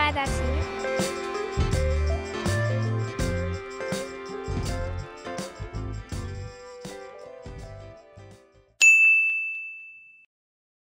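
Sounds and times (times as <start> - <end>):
music: 0.0 - 8.8
bright chime ringing: 8.8 - 10.3.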